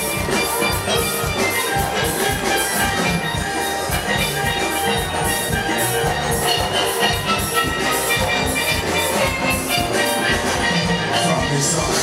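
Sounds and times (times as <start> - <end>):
live calypso band music: 0.0 - 12.0
steady drum beat: 0.0 - 12.0.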